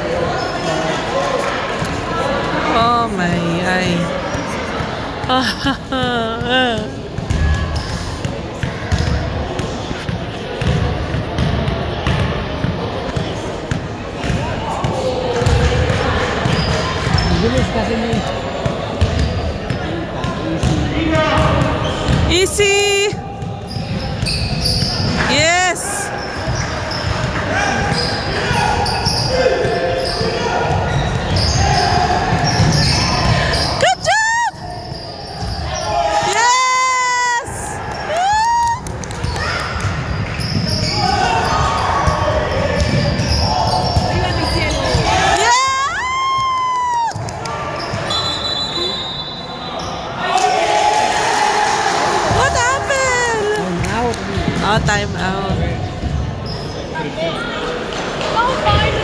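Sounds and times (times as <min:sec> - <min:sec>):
voices in a large gym: 0:00.0 - 0:59.0
sneakers squeaking: 0:03.2 - 0:36.3, 0:39.0 - 0:46.5, 0:47.2 - 0:50.2, 0:54.8 - 0:57.2
basketball bouncing: 0:06.1 - 0:07.7, 0:08.6 - 0:19.4, 0:21.4 - 0:22.3.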